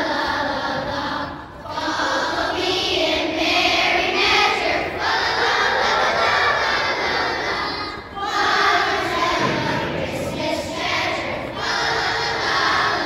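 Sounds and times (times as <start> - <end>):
children singing together: 0.0 - 13.0.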